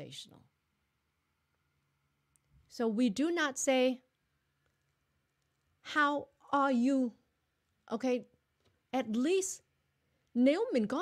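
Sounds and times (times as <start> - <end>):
woman speaking: 0.0 - 0.5, 2.7 - 4.1, 5.8 - 7.2, 7.9 - 8.3, 8.9 - 9.7, 10.3 - 11.0.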